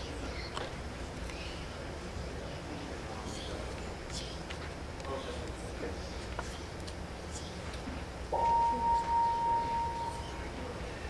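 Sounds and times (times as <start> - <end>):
low hall noise: 0.0 - 11.0
pure high-pitched tone: 8.3 - 10.6.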